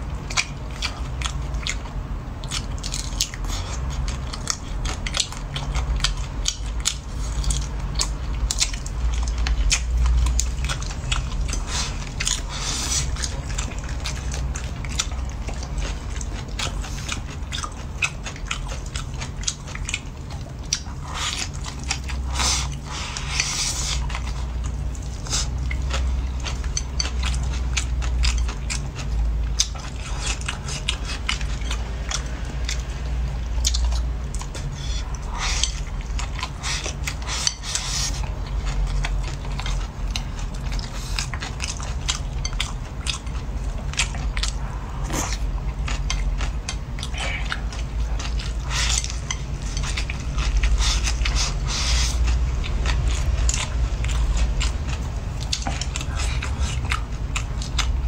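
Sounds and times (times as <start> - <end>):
chewing and crunching food: 0.0 - 58.0.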